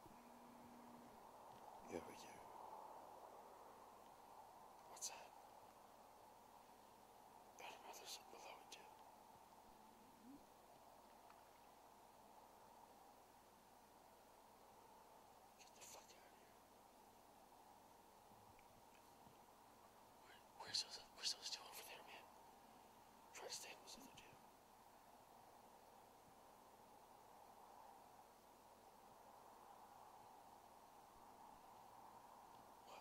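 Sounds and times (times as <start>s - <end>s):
faint steady hiss: 0.0s - 33.0s
person whispering: 1.8s - 2.5s, 4.8s - 5.4s, 7.6s - 9.0s, 10.0s - 10.5s, 15.6s - 16.5s, 20.2s - 22.3s, 23.3s - 24.4s.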